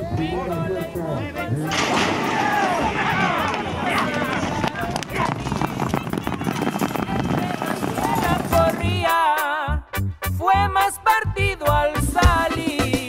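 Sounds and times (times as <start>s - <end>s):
horses galloping on dirt: 1.1s - 9.5s
people shouting excitedly: 1.6s - 5.4s
song with music: 8.2s - 13.0s.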